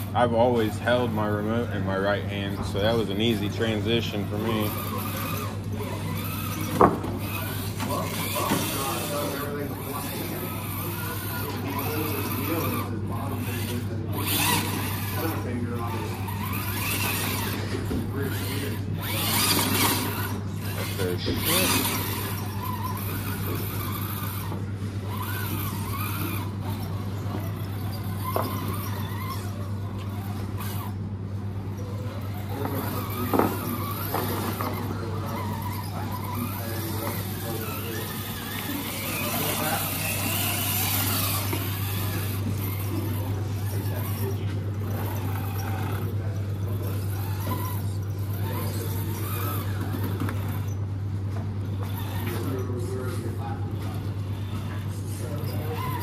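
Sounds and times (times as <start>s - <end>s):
electric motor and drivetrain whining: 0.0s - 56.0s.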